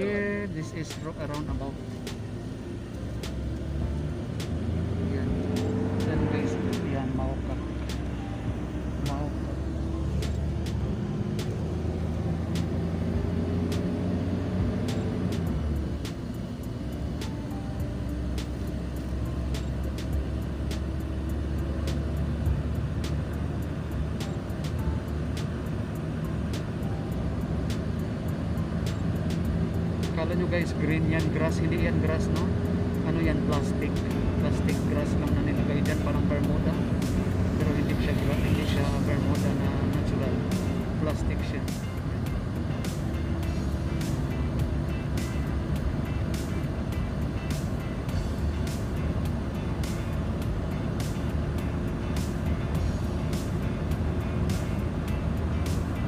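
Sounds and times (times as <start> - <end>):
car engine rumble: 0.0 - 56.0.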